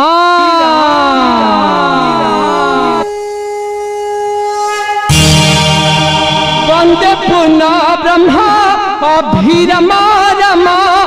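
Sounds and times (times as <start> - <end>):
electronic instrument tones: 2.6 - 8.4.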